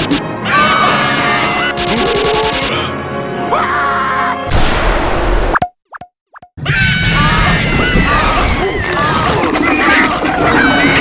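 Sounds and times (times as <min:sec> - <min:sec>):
music: 0:00.0 - 0:04.5, 0:09.6 - 0:11.0.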